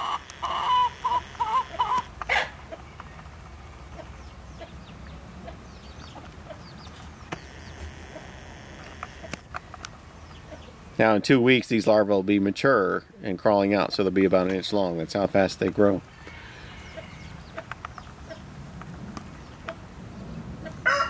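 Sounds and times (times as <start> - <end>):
chickens clucking: 0.0 - 19.9, 20.6 - 21.0.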